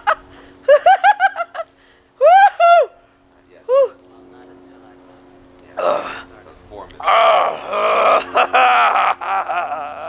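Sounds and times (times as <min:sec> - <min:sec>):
faint steady hum: 0:00.0 - 0:10.0
man groaning: 0:05.8 - 0:06.3, 0:07.0 - 0:10.0.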